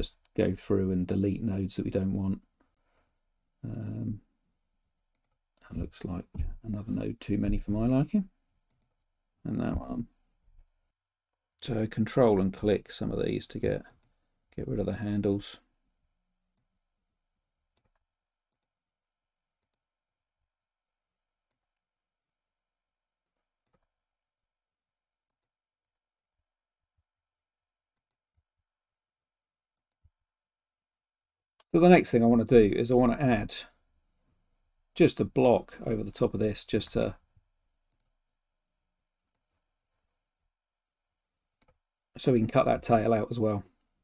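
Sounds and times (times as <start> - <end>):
computer mouse clicks: 5.1 - 5.4, 8.7 - 9.0, 17.7 - 18.7, 19.6 - 19.9, 23.6 - 23.9, 25.3 - 25.5, 37.9 - 38.2
person speaking: 5.6 - 8.4, 9.4 - 10.1, 11.6 - 14.0, 31.7 - 33.8, 35.0 - 37.2, 42.2 - 43.7.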